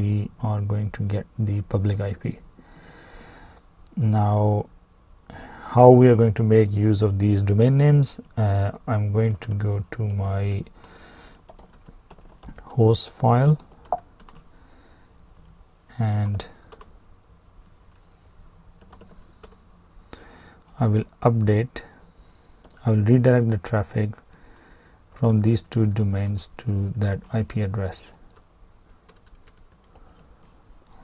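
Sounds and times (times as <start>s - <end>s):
keyboard key clicks: 13.9s - 14.3s.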